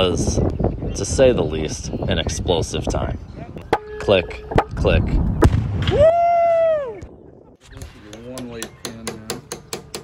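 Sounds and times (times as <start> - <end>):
explosion: 5.4 - 6.0
person cheering woo: 5.9 - 7.1.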